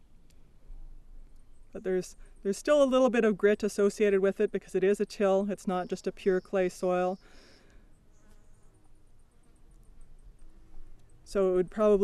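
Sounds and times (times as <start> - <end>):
quiet outdoor background: 0.0 - 12.0
insect ticking call: 5.6 - 12.0.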